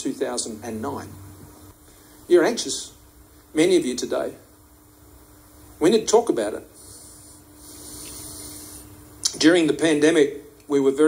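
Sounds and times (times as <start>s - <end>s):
faint hiss: 0.0s - 11.0s
steady low hum: 0.0s - 11.0s.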